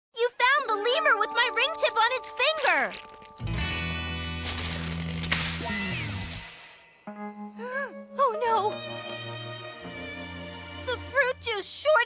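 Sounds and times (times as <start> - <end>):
electric crackling and sizzling: 2.9 - 7.0.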